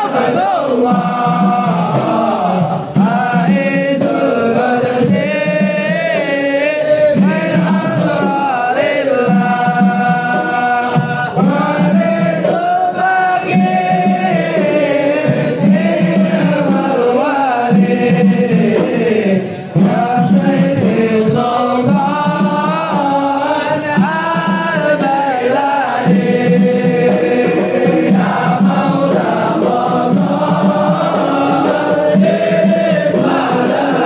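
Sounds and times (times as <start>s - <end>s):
men chanting in unison: 0.0s - 34.0s.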